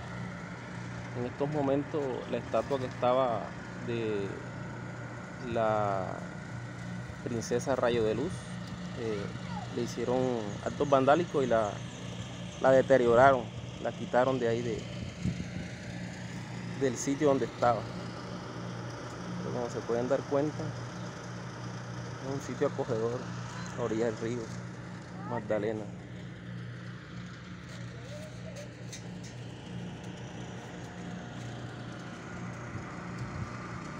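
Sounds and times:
engine humming: 0.0s - 33.9s
man speaking: 1.2s - 4.4s, 5.4s - 6.3s, 9.0s - 11.8s, 16.8s - 17.9s, 22.2s - 24.6s, 25.2s - 26.0s.

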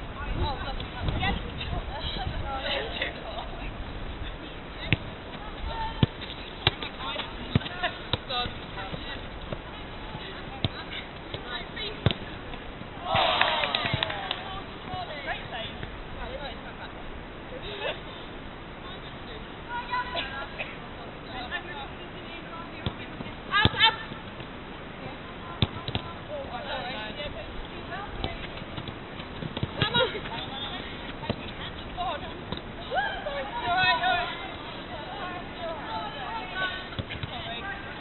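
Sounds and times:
faint players' voices: 0.0s - 38.0s
players calling out: 5.3s - 15.6s
football being kicked: 5.9s - 12.4s, 25.6s - 26.1s, 28.2s - 30.5s.

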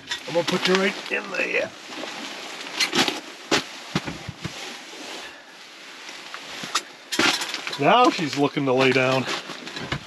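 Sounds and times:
knocks and clunks of gear: 8.8s - 10.0s.

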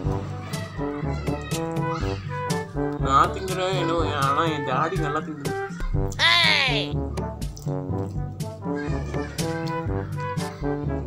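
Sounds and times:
upbeat music with steady beat: 0.0s - 11.0s.

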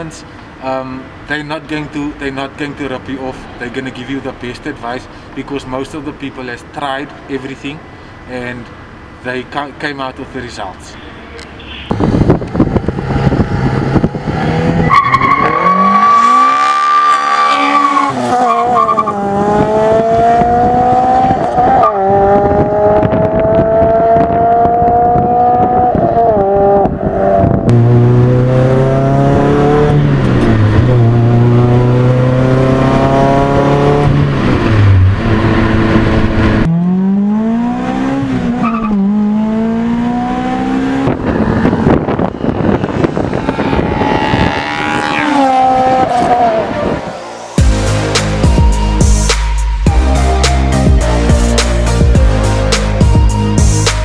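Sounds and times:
car engine revving through gears: 11.9s - 47.2s.

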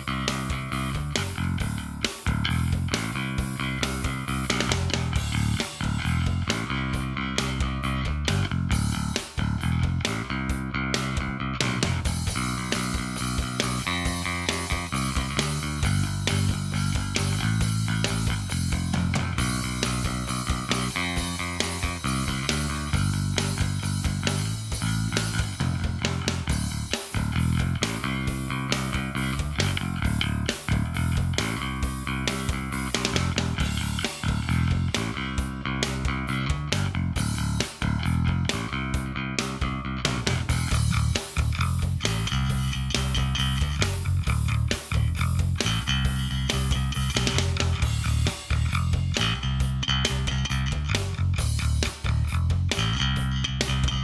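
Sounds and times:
electric bass plucked fingerstyle: 0.0s - 54.0s.

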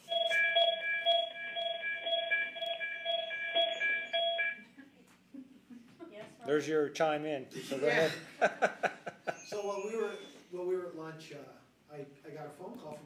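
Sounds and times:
pulsing electronic chime: 0.0s - 4.6s.

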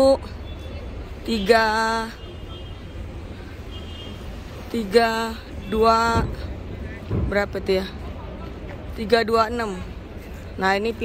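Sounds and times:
traffic hum: 0.0s - 11.0s.

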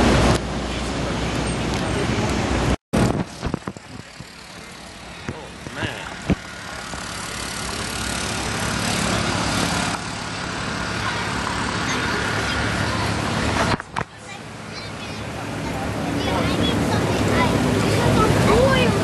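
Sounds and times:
traffic: 0.0s - 19.0s
chatter of passers-by: 0.1s - 2.8s, 3.6s - 19.0s.

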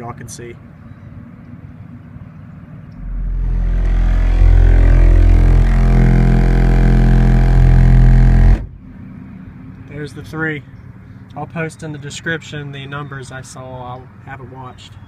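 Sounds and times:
deep subwoofer test tone: 3.0s - 9.0s.

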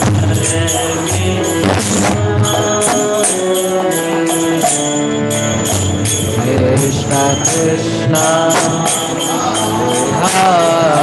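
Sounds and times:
metal hand cymbals striking: 0.0s - 11.0s
person singing a chant: 0.0s - 11.0s.

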